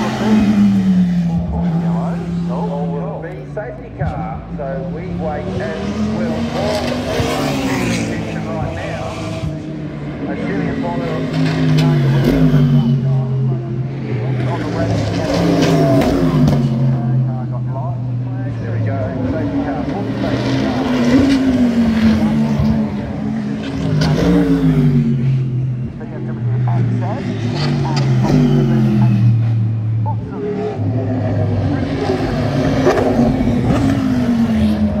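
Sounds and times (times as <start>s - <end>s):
race car engines revving: 0.0s - 35.0s.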